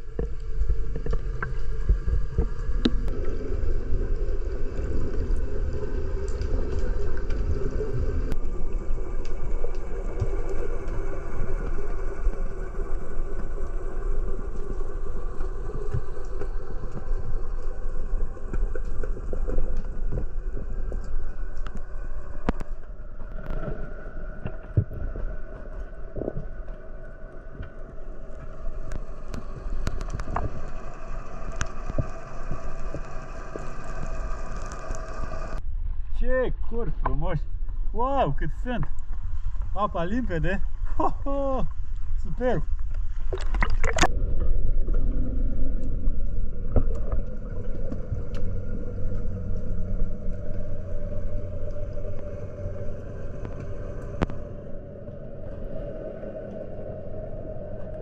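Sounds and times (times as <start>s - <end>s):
muffled underwater rumble: 0.0s - 58.0s.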